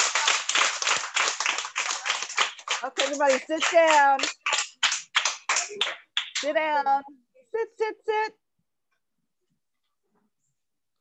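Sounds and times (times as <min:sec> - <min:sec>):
hands clapping rhythmically: 0:00.0 - 0:06.6.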